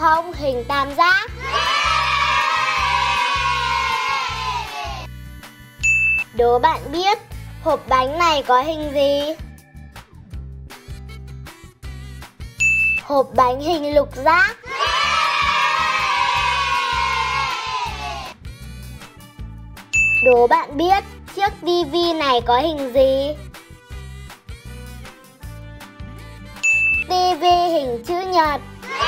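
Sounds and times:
light background music: 0:00.0 - 0:29.0
bright ding: 0:05.8 - 0:06.2, 0:12.6 - 0:13.0, 0:20.0 - 0:20.3, 0:26.6 - 0:27.1.

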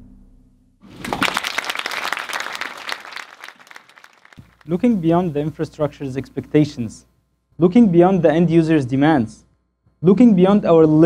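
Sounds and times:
audience applauding: 0:00.9 - 0:04.8.

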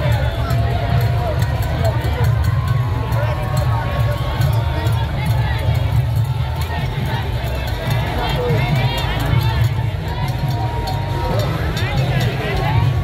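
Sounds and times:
bass drums beating: 0:00.0 - 0:13.0
crowd shouting: 0:00.0 - 0:13.0.

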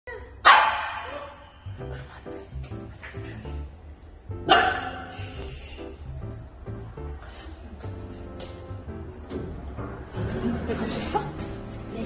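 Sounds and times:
puppy barking: 0:00.4 - 0:01.1, 0:04.5 - 0:05.1.

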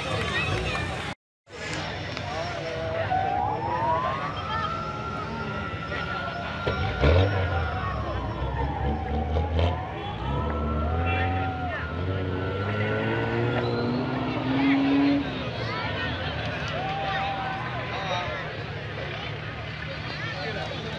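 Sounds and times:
spectators talking: 0:00.0 - 0:20.9
vehicle engine revving: 0:05.1 - 0:16.8.

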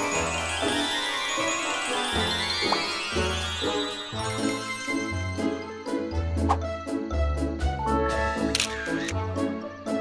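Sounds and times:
camera shutter click: 0:08.5 - 0:09.2.

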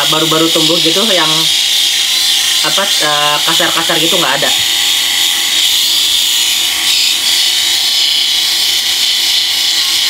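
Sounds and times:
electric epilator buzzing: 0:00.0 - 0:10.0.

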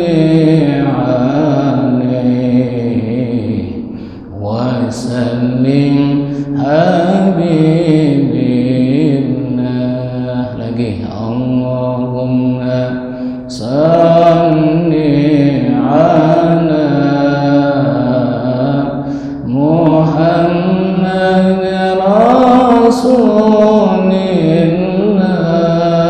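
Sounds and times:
man chanting: 0:00.0 - 0:26.0.

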